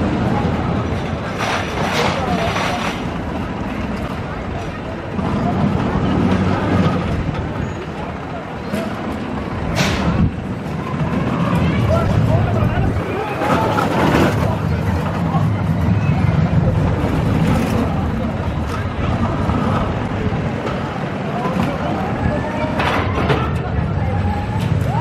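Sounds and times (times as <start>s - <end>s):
people's voices: 0.0s - 25.0s
roller coaster rumbling on track: 0.0s - 25.0s.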